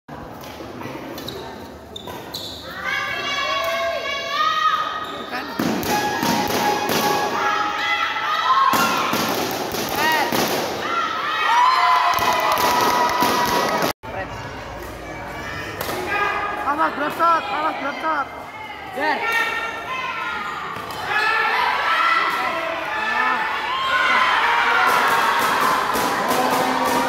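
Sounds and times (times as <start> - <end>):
sneakers squeaking on court: 1.2 - 2.7.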